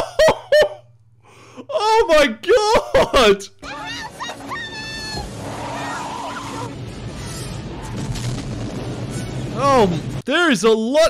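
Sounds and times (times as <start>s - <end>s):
child screaming: 3.7s - 7.6s
soundtrack rumble and hiss: 4.0s - 10.6s.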